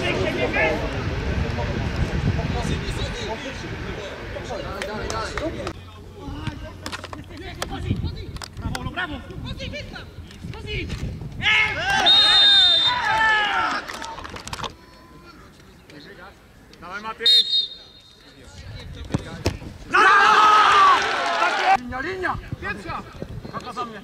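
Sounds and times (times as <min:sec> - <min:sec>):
voices shouting: 0:19.9 - 0:21.8.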